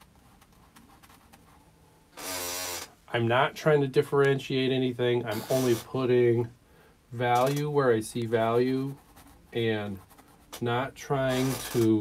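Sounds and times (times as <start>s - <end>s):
chair squeaking: 2.2s - 3.0s, 5.3s - 5.9s, 11.3s - 12.0s.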